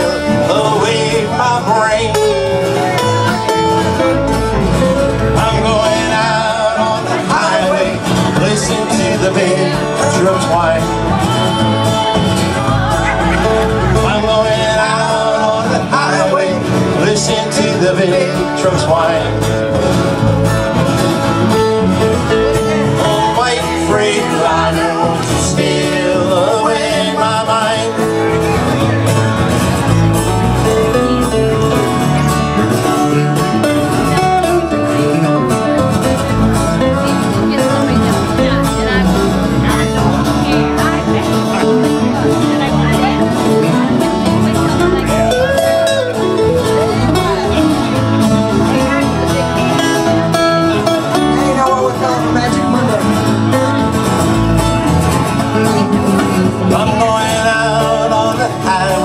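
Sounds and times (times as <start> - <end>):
acoustic guitar: 0.0 - 59.0
electric bass: 0.0 - 59.0.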